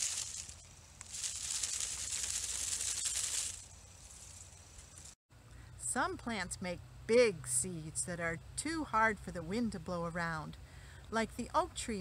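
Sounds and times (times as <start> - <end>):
dried seed pods rattling: 0.0 - 5.2.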